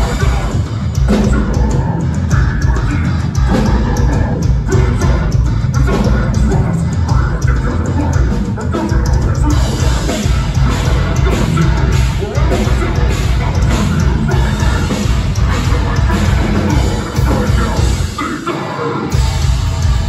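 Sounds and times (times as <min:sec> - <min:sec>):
heavy metal band playing live: 0:00.0 - 0:20.0.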